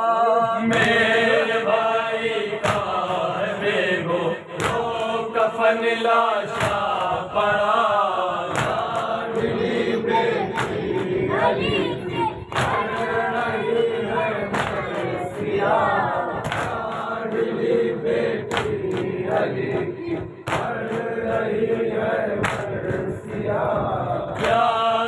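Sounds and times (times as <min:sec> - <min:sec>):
men chanting together: 0:00.0 - 0:25.0.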